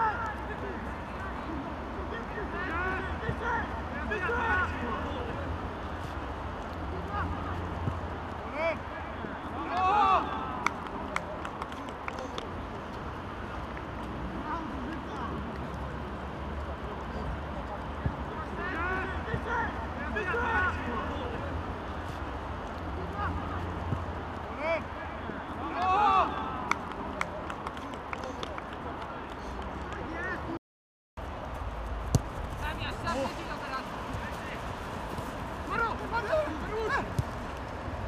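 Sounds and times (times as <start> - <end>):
open-air background noise: 0.0 - 30.6, 31.2 - 38.0
loud shout: 9.5 - 10.7, 25.6 - 26.7.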